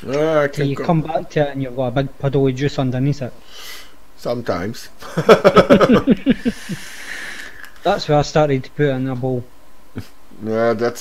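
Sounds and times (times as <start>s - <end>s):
soft hiss of vaping: 3.4s - 4.0s
man laughing: 5.0s - 7.8s.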